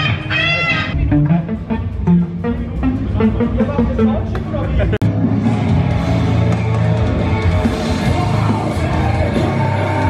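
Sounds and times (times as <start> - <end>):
electric guitar picking notes: 0.0 - 7.6
metal band playing live: 0.0 - 10.0.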